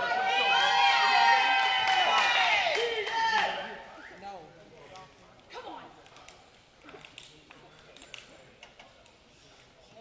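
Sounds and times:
voices murmuring in a large hall: 0:00.0 - 0:10.0.

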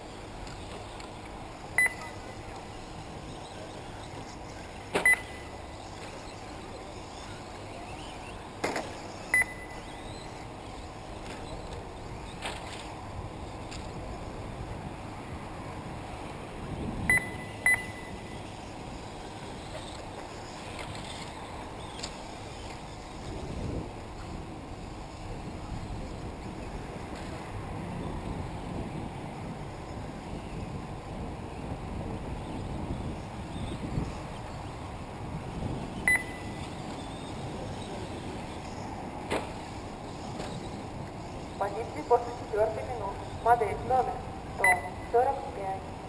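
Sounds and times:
outdoor background hiss: 0:00.0 - 0:46.0
short electronic beeps: 0:01.8 - 0:02.4, 0:05.0 - 0:05.7, 0:09.3 - 0:10.3, 0:17.1 - 0:18.5, 0:36.1 - 0:36.7, 0:44.6 - 0:45.1.

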